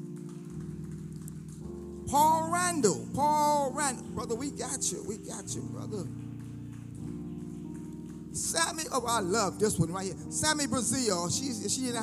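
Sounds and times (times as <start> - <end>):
soft keyboard chords: 0.0 - 12.0.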